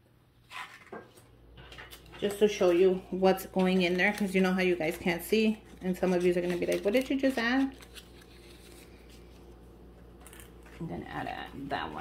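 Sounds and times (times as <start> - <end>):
paper rustling: 1.9 - 9.6.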